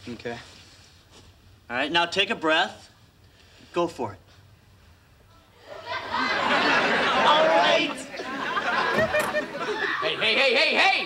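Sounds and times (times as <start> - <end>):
studio audience exclaiming: 5.7 - 11.0.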